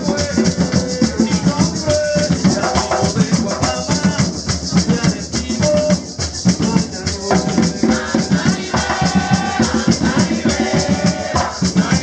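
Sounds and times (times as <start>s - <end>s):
drum rhythm: 0.0s - 12.0s
maraca rattling: 0.0s - 12.0s.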